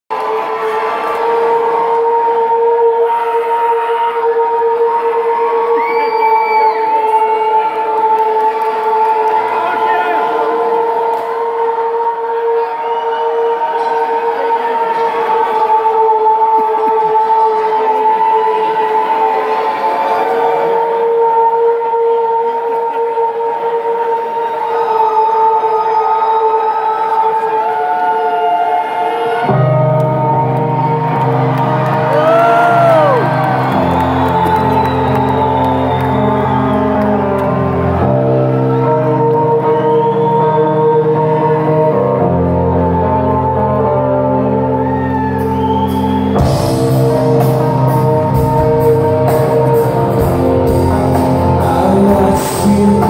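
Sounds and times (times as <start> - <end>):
crowd cheering and shouting: 0.0 - 53.0
shrill whistle: 5.2 - 7.8, 32.2 - 37.3, 39.4 - 41.4, 44.6 - 47.1
rock band droning held notes: 29.6 - 53.0.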